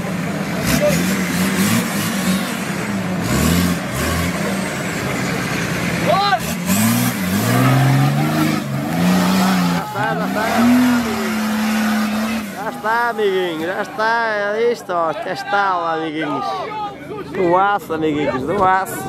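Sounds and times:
off-road engine revving hard: 0:00.0 - 0:13.9.

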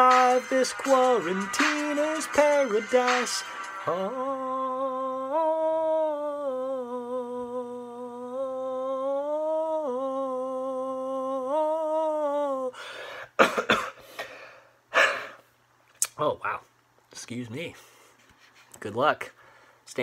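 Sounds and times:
man singing a long note: 0:00.0 - 0:12.8
man coughing: 0:13.4 - 0:14.0.

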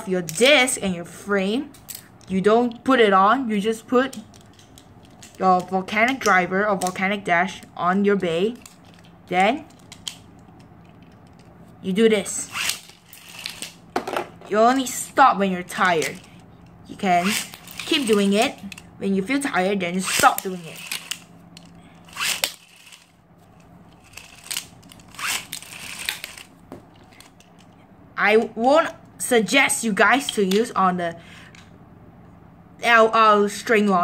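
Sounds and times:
person speaking: 0:00.0 - 0:04.4, 0:05.2 - 0:09.8, 0:11.7 - 0:12.7, 0:14.3 - 0:21.2, 0:28.1 - 0:31.4
plastic clicks of spinning top: 0:20.1 - 0:23.1, 0:24.0 - 0:27.8.

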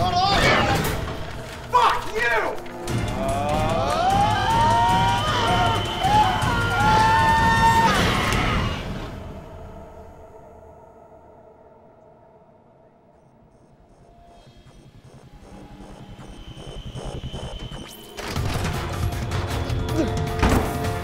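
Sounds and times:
tense horror film score: 0:00.0 - 0:21.0.

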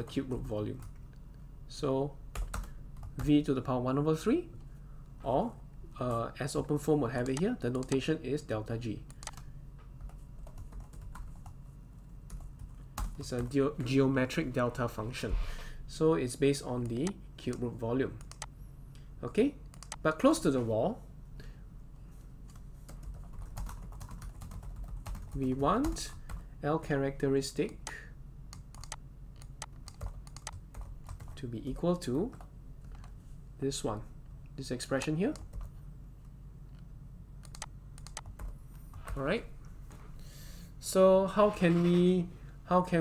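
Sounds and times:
low steady hum: 0:00.0 - 0:43.0
keyboard keystrokes: 0:09.1 - 0:09.4, 0:18.2 - 0:18.5, 0:19.7 - 0:20.0, 0:28.6 - 0:31.4, 0:37.4 - 0:38.5.

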